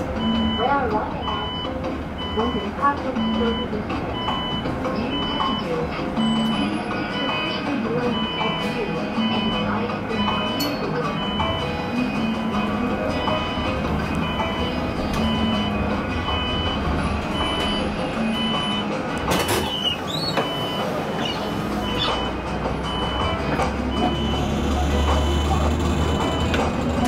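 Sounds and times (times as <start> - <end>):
bus running noise: 0.0 - 27.0
electronic warning beeper: 0.2 - 26.6.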